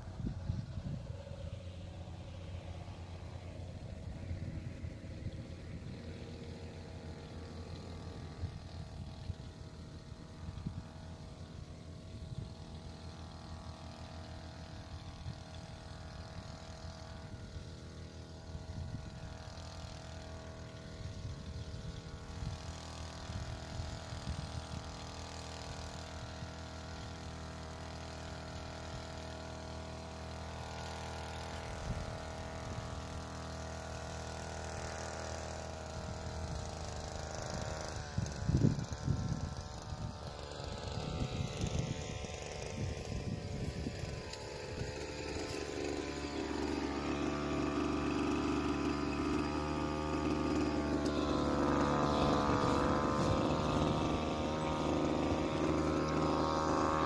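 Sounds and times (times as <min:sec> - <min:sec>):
small two-stroke engine running: 0:00.0 - 0:57.0.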